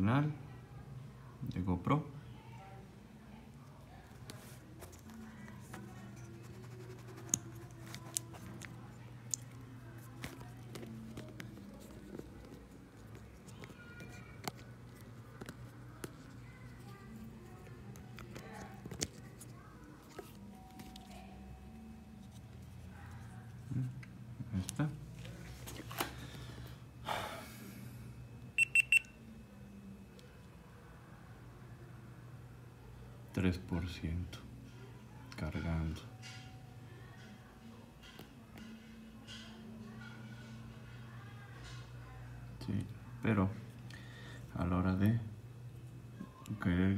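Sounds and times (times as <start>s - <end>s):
faint low hum: 0.0s - 46.9s
camera high beeps: 28.6s - 29.1s.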